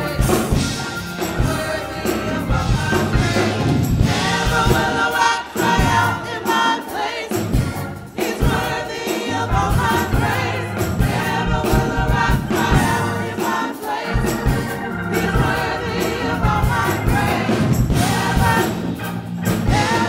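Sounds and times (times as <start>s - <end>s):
bass line: 0.0s - 6.3s, 7.3s - 8.7s, 9.3s - 13.4s, 14.2s - 20.0s
choir singing together: 0.0s - 20.0s
steady drum beat: 0.0s - 20.0s.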